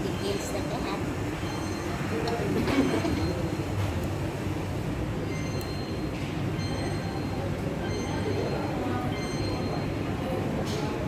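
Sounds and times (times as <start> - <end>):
restaurant room rumble: 0.0 - 11.0.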